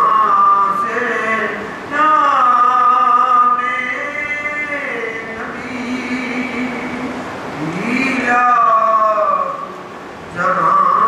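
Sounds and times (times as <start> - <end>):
man chanting: 0.0 - 11.0
steady hiss: 0.0 - 11.0.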